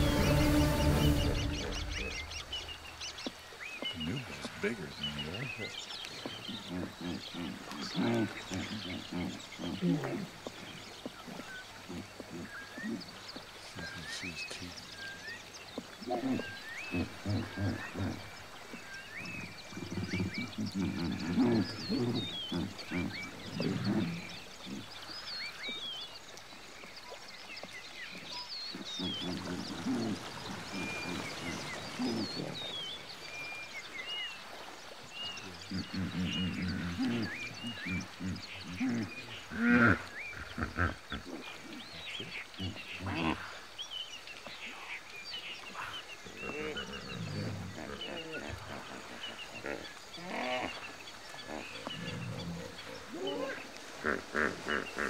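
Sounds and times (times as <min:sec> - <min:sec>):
hippopotamus grunting: 0:00.0 - 0:02.4, 0:03.8 - 0:15.2, 0:16.0 - 0:25.2, 0:28.7 - 0:32.9, 0:35.3 - 0:43.6, 0:45.7 - 0:55.0
birds chirping: 0:00.0 - 0:55.0.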